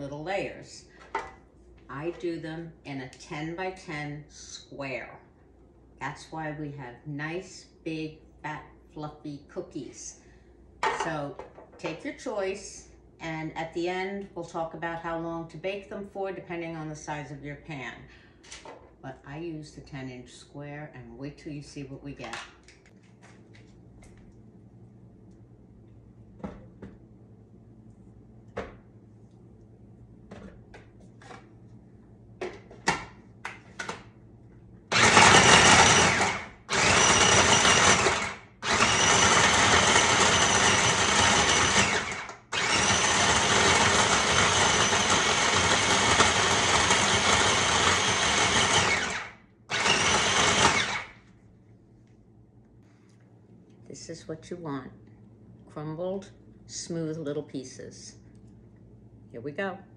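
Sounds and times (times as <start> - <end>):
food processor grinding: 34.9 - 51.2.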